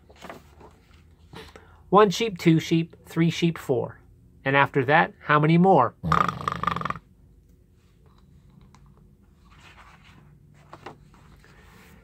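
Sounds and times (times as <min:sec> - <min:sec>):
man making mock snore: 0:06.0 - 0:07.1.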